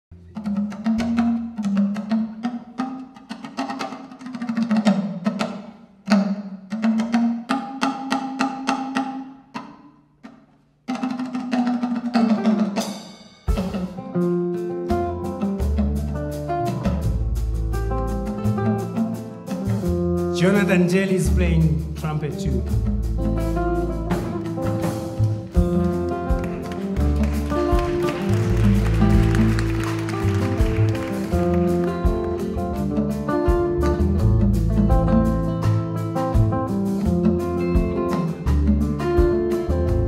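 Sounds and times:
drum and percussion phrases: 0.1s - 40.0s
live band with bass and guitars: 0.3s - 9.7s, 11.0s - 40.0s.

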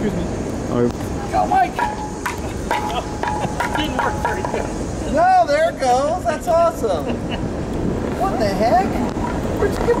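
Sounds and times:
bystanders talking: 0.0s - 10.0s.

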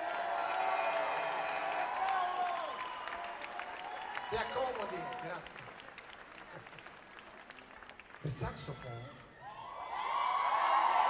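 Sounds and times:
audience clapping: 0.0s - 11.0s
crowd cheering: 0.0s - 11.0s.

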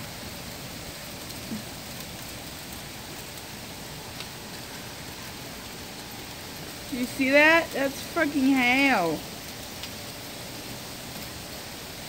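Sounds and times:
hailstones ticking: 0.0s - 12.0s
heavy rain: 0.0s - 12.0s.

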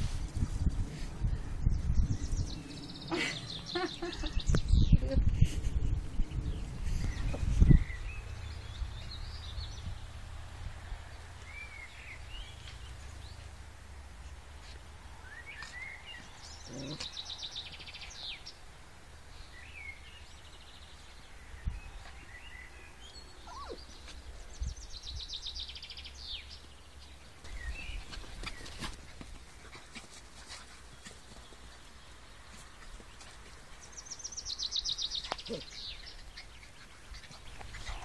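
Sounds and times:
steady low rumble: 0.0s - 3.1s, 4.0s - 15.2s.

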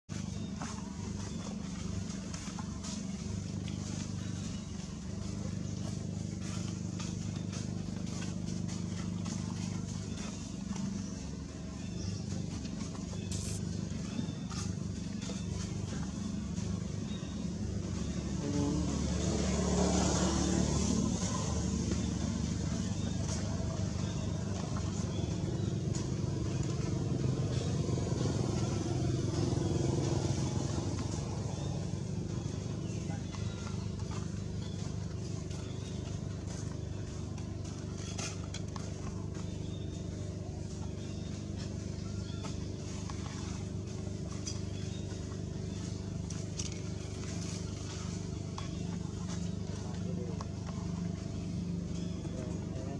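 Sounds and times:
motor engine running: 0.0s - 52.9s.

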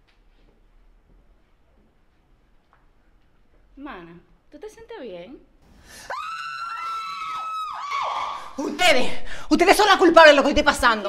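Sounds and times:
woman screaming: 6.1s - 9.0s.

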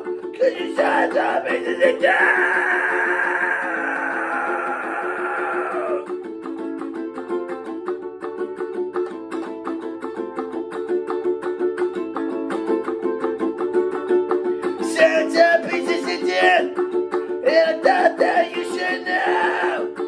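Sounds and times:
ukulele strummed fast: 0.0s - 20.0s.

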